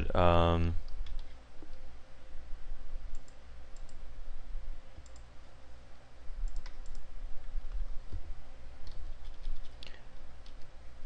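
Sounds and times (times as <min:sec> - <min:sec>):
faint hum: 0:00.0 - 0:11.0
computer mouse clicks: 0:00.8 - 0:01.8, 0:03.1 - 0:04.0, 0:05.0 - 0:05.3, 0:06.4 - 0:07.1, 0:08.8 - 0:10.7.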